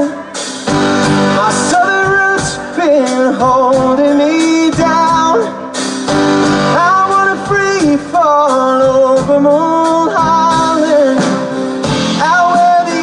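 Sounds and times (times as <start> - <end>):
man singing long notes: 0.0 - 5.8, 6.6 - 13.0
live band playing: 0.0 - 13.0.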